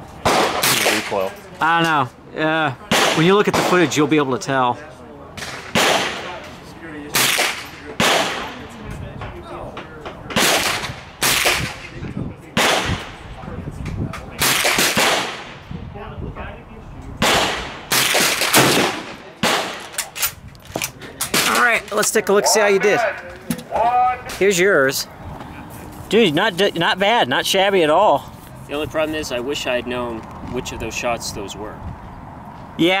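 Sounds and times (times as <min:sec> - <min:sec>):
rifle shots echoing: 0:00.2 - 0:01.2, 0:02.9 - 0:04.0, 0:05.4 - 0:06.4, 0:07.2 - 0:08.6, 0:10.4 - 0:12.0, 0:12.6 - 0:13.2, 0:14.4 - 0:15.6, 0:17.2 - 0:20.0.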